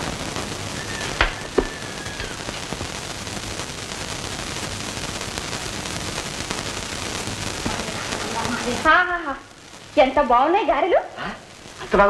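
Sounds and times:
film soundtrack hiss and crackle: 0.0s - 12.0s.

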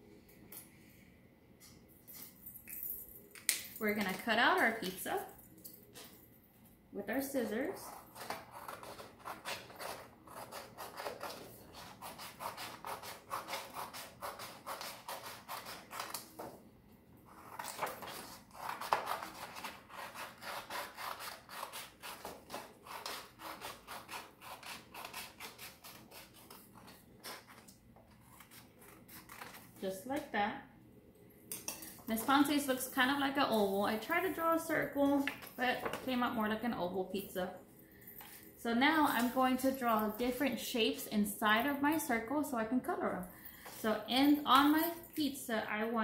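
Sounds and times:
scissors snipping paper: 7.8s - 16.4s, 17.3s - 29.6s
paper rustling: 17.4s - 19.9s.

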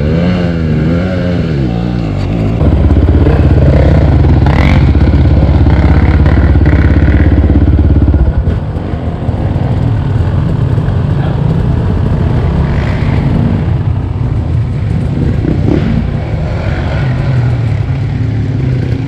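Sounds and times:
dirt bike engine revving: 0.0s - 8.6s, 14.8s - 19.0s.

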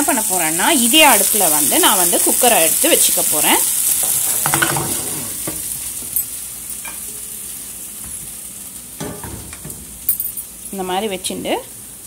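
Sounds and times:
masala sizzling in frying pan: 0.0s - 12.0s.

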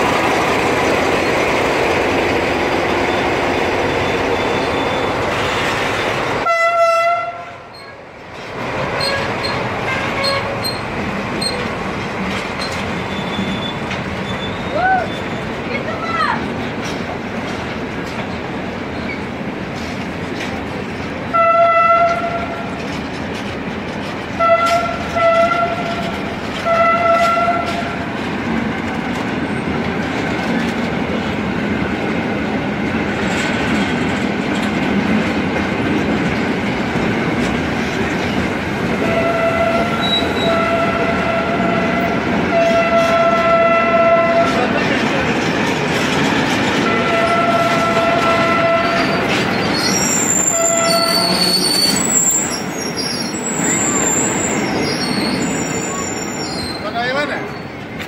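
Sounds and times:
train wheels clattering on rail: 0.0s - 6.5s, 7.7s - 58.0s.

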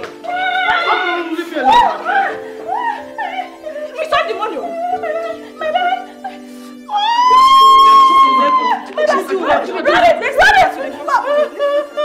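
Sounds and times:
voices crying out and talking: 0.1s - 12.0s
woman screaming: 0.2s - 6.2s, 6.9s - 9.3s.

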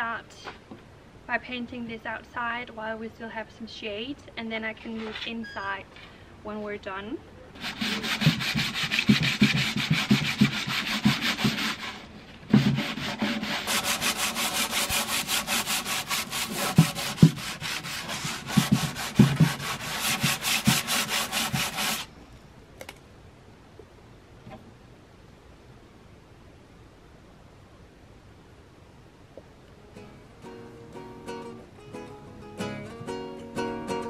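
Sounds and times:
sanding sponge scraping wood: 7.6s - 22.1s.

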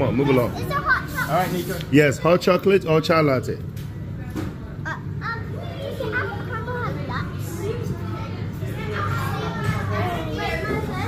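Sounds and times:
children chattering: 0.0s - 3.0s, 4.6s - 11.0s.

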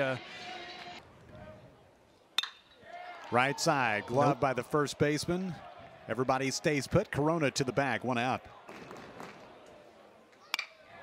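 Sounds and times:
metal bat hitting ball: 2.4s - 2.7s, 10.5s - 10.8s.

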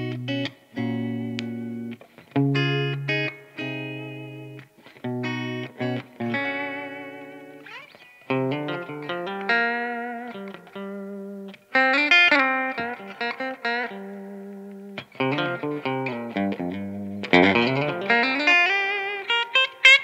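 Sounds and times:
clean electric guitar: 0.0s - 20.0s.

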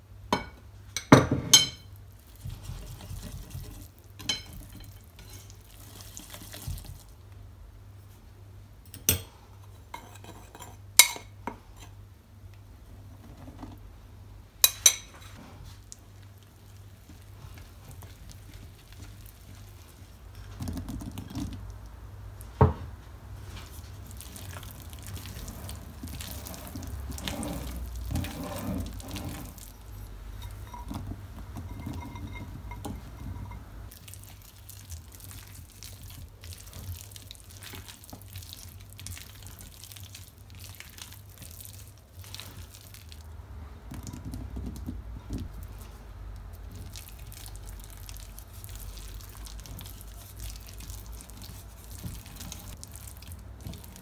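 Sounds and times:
batter mixed in glass bowl: 0.3s - 7.2s, 14.6s - 22.7s, 23.4s - 54.0s
wooden spoon stirring: 1.8s - 7.2s, 14.6s - 22.6s, 23.3s - 43.2s, 43.9s - 54.0s.

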